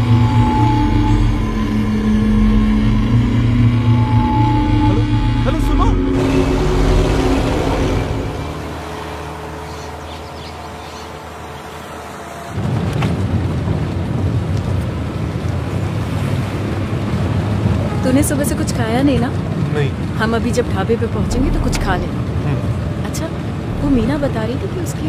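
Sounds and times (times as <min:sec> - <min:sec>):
steady low drone: 0:00.0 - 0:12.8, 0:21.0 - 0:25.0
bus engine and road noise: 0:04.5 - 0:25.0.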